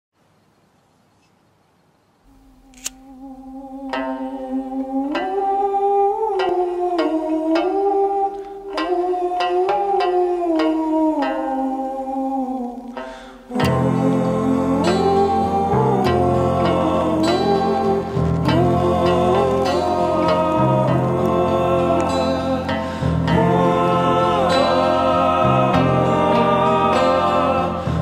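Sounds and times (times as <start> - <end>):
gliding folk melody line: 2.6 - 28.0.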